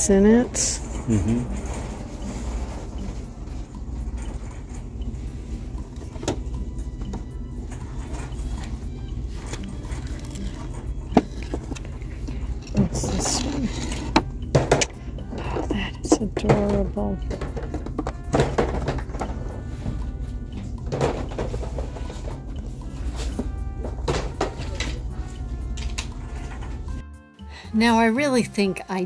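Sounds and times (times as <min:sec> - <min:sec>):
low rumble of shop ambience: 0:00.0 - 0:27.0.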